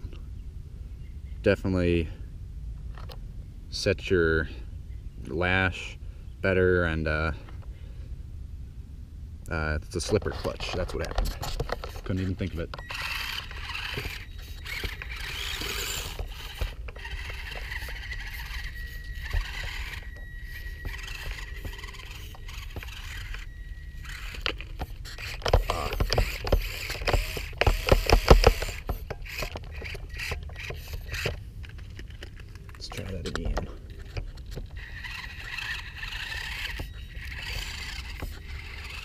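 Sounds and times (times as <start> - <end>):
toy truck clattering over rocks: 10.0 - 39.0
electric motor whining: 11.6 - 39.0.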